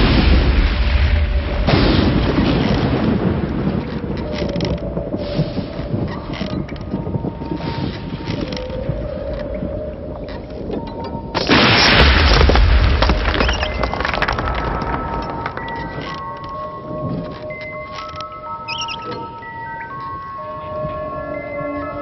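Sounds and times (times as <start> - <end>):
loud rush of noise: 0.0 - 3.7
deep rumbling booms: 0.0 - 7.6, 11.4 - 16.3.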